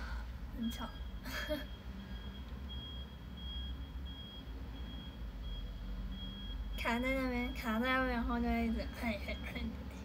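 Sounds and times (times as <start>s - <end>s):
low steady hum: 0.0s - 10.0s
high-pitched electronic beep: 0.6s - 7.8s.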